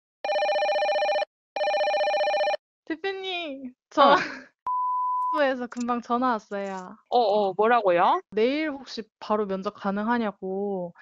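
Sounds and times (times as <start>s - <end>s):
telephone ringing: 0.2s - 2.6s.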